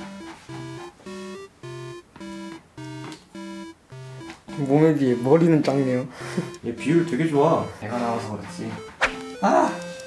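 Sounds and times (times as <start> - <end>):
simple electronic melody: 0.0 - 10.0.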